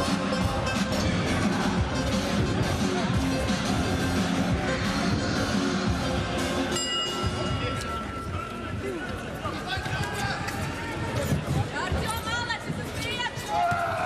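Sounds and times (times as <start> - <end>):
background music: 0.0 - 8.9
crowd noise: 0.0 - 14.0
ringing tone: 6.7 - 8.4
people shouting: 13.4 - 14.0.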